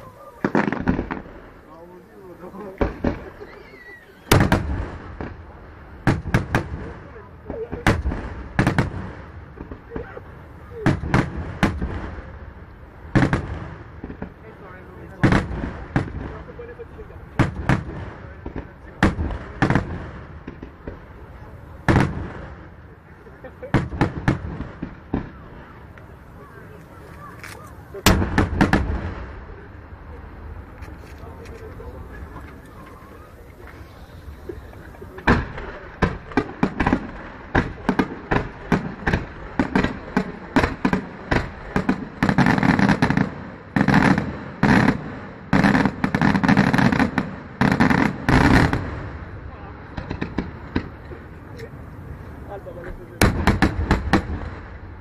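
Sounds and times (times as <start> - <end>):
firework shells bursting: 23.7 - 29.4, 30.6 - 49.1.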